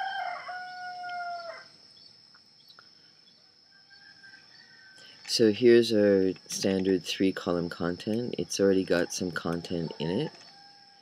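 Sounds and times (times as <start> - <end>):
bird crowing: 0.0 - 1.8, 3.7 - 5.3, 8.9 - 11.0.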